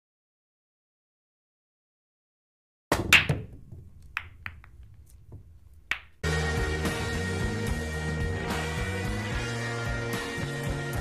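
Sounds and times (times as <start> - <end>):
snooker balls clicking: 2.9 - 6.2.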